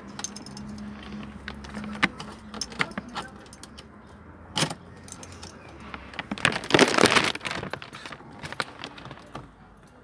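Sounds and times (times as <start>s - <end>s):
car keys jangling: 0.0s - 3.9s, 4.5s - 5.8s.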